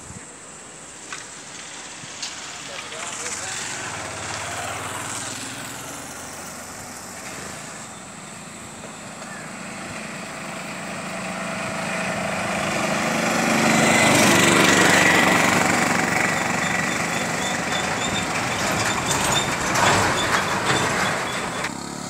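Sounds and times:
vehicle engines and tyre noise: 0:00.0 - 0:22.0.

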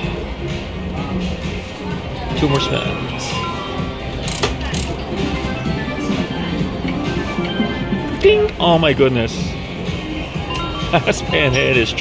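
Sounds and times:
music: 0:00.0 - 0:12.0
slot machine electronic tones: 0:02.3 - 0:08.7, 0:10.4 - 0:12.0.

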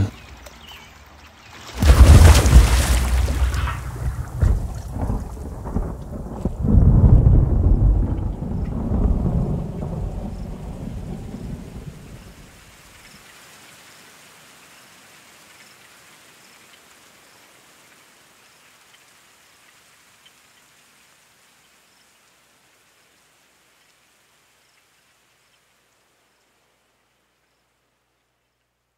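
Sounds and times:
faint rain: 0:00.0 - 0:28.9
thunder rumbling: 0:01.8 - 0:12.5.

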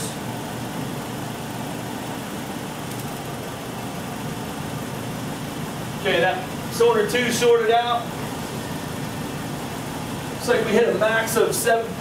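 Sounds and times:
misfiring car engine idling: 0:00.0 - 0:12.0.

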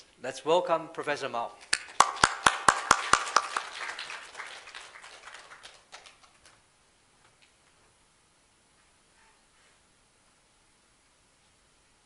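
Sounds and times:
loud single claps: 0:01.6 - 0:06.6
audience applauding: 0:01.7 - 0:06.6.

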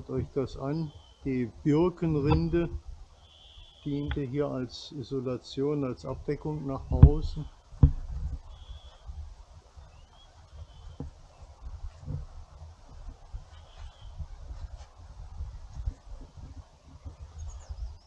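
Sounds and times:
wind rumble on microphone: 0:00.0 - 0:03.2, 0:06.0 - 0:18.0
high bird chirps: 0:08.4 - 0:09.0.

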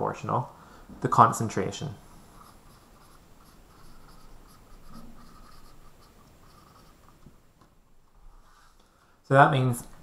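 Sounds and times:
marker scratching on whiteboard: 0:02.0 - 0:07.4.

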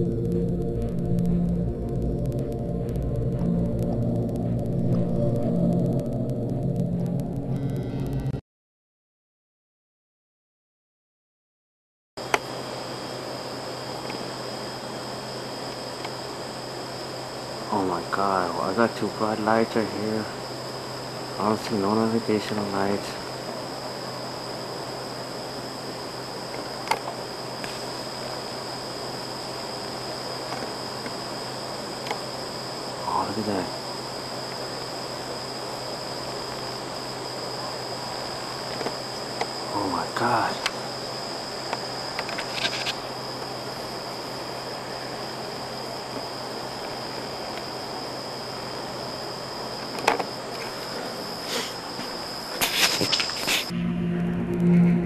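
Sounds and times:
crickets trilling: 0:00.0 - 0:07.8, 0:12.2 - 0:54.8
even hiss: 0:17.0 - 0:46.7, 0:50.5 - 0:53.8.

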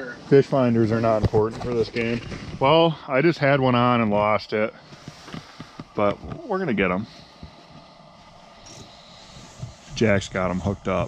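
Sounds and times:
propane heater hissing: 0:00.0 - 0:11.0.

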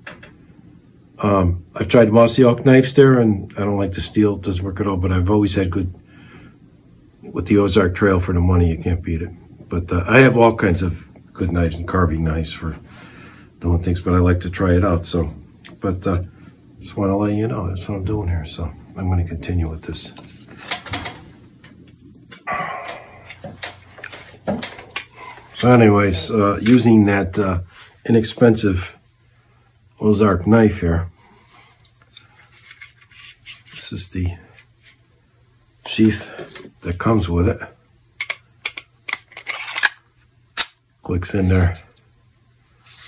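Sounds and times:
knife scraping wood: 0:32.4 - 0:33.8.

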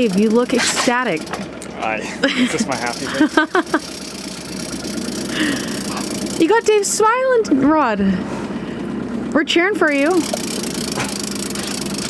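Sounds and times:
outboard motor idling: 0:00.0 - 0:12.0.

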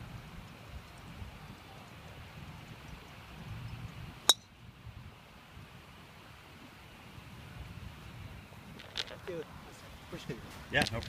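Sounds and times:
golf club striking ball: 0:04.3 - 0:04.5.

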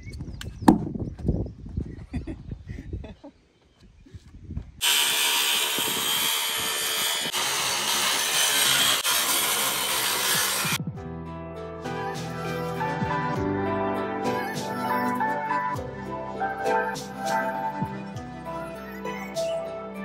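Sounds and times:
circular saw cutting: 0:04.8 - 0:10.8.

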